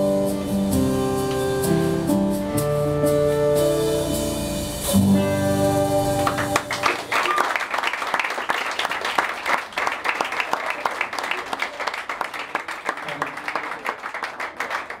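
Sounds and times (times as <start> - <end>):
audience applauding: 6.1 - 15.0.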